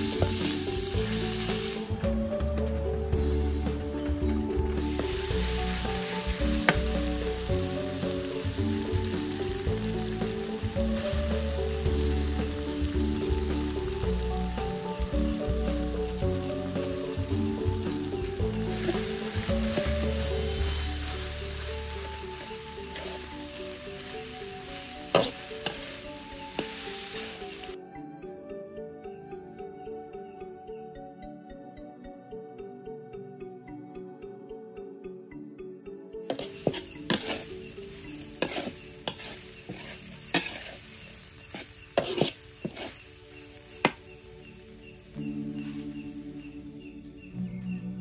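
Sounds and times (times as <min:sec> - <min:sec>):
vegetables sizzling in a wok: 0:00.0 - 0:02.1, 0:03.2 - 0:27.8, 0:36.3 - 0:47.7
background music: 0:00.0 - 0:48.0
metal spatula scraping a pan: 0:22.8 - 0:23.3, 0:24.7 - 0:26.0, 0:36.3 - 0:43.1.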